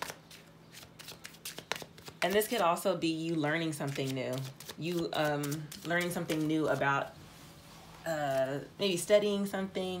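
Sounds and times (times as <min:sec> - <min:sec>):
cards being shuffled: 0:00.0 - 0:02.7, 0:03.7 - 0:06.9.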